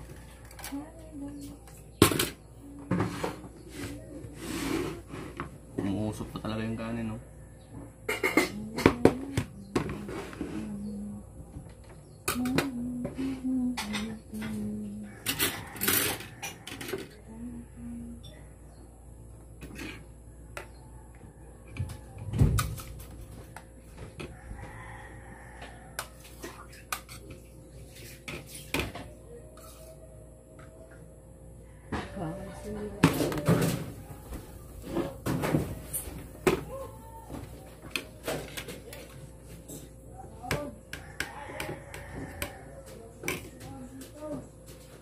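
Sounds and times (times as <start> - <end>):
person humming: 8.5 - 11.4, 12.3 - 15.2, 17.2 - 18.2.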